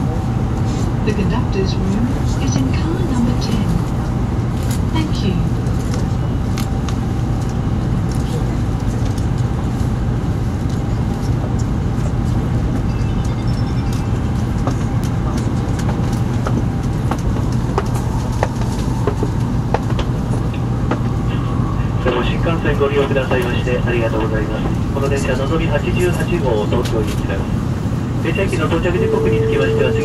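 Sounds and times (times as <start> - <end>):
train running rumble and hum: 0.0 - 30.0.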